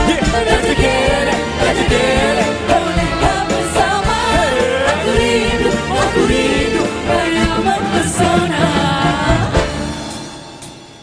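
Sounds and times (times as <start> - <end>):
women singing pop song: 0.0 - 9.9
drums marking the beat: 0.0 - 11.0
live band: 0.0 - 11.0.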